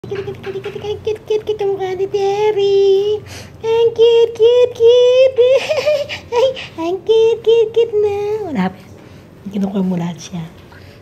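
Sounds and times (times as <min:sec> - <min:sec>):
high-pitched voice singing: 0:00.0 - 0:05.8, 0:06.4 - 0:08.5.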